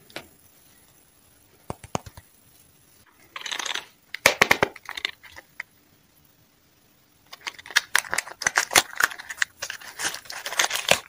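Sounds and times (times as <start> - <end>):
candy wrapper crinkling: 3.4 - 5.4, 7.3 - 11.0.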